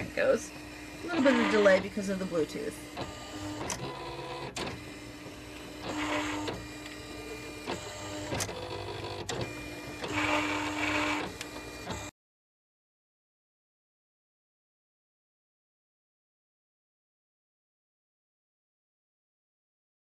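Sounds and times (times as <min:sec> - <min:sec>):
cutting machine motors whirring: 0:00.0 - 0:12.1.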